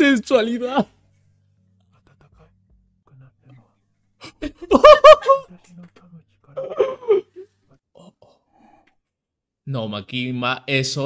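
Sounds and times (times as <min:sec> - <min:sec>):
faint whispered dialogue: 0:00.9 - 0:04.4, 0:05.4 - 0:09.0.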